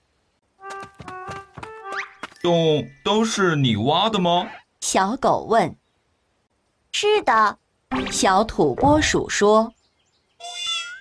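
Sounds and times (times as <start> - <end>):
person narrating: 7.0 - 9.7
cartoon cat meow: 10.4 - 11.0.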